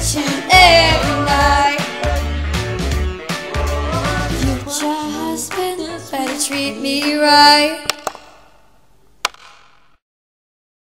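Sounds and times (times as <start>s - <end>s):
sharp click: 9.2s - 9.9s.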